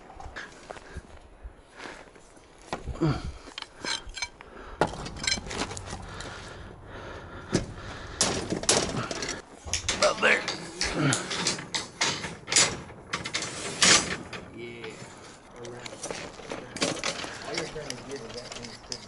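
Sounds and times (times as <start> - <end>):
steel bars clinking together: 3.6 - 5.5, 8.6 - 14.4.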